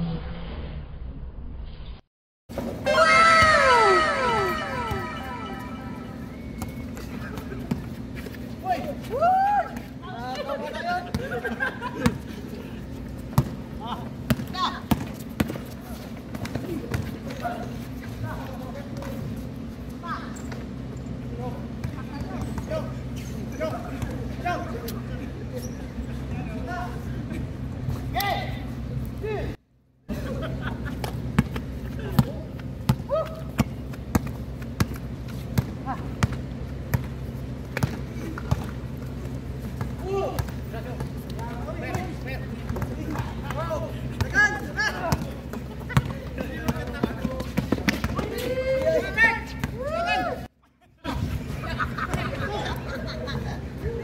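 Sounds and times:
players shouting and talking: 2.8s - 7.9s, 15.8s - 30.4s, 37.9s - 51.2s
steady low hum: 2.8s - 48.7s
basketball bouncing on hard court: 32.9s - 35.0s.

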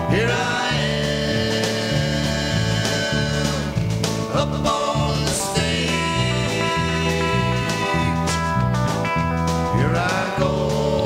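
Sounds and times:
bass guitar: 0.0s - 11.0s
drum kit: 0.0s - 11.0s
electric guitars: 0.0s - 11.0s.

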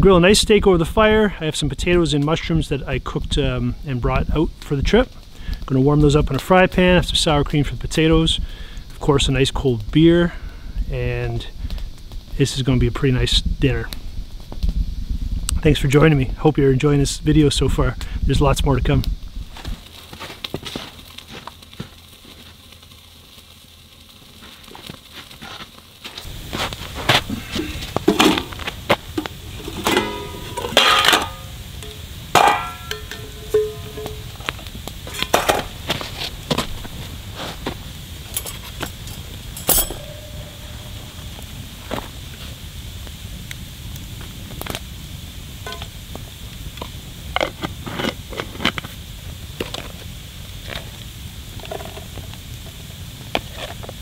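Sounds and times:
campfire crackling: 0.0s - 54.0s
skillet and containers clinking: 29.2s - 35.7s, 38.3s - 41.2s, 45.7s - 45.9s.

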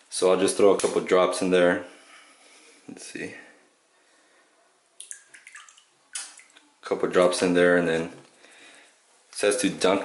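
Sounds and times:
liquid dripping into water: 5.0s - 6.7s.

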